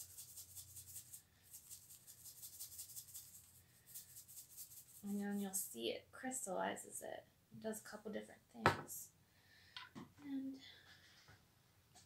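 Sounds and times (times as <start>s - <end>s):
salt shaker rattling: 0.0s - 5.4s.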